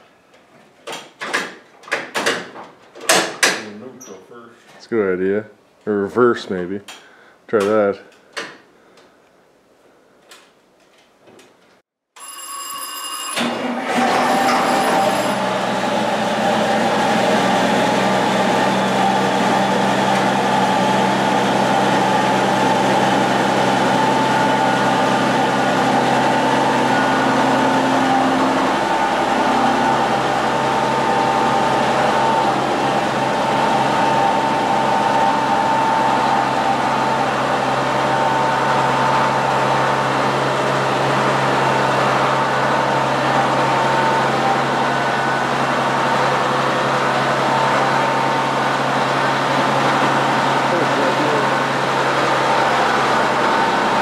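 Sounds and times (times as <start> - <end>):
harvester engine running: 13.4 - 54.0
constant whine: 14.6 - 54.0.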